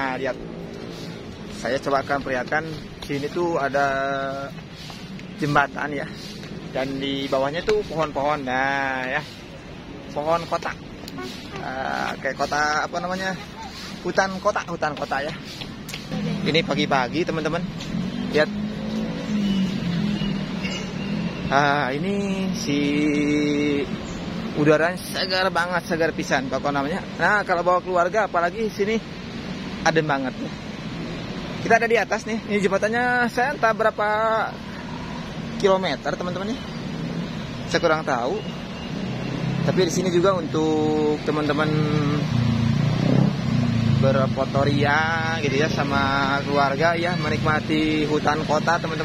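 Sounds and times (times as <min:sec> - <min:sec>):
road traffic engine hum: 0:00.0 - 0:49.0.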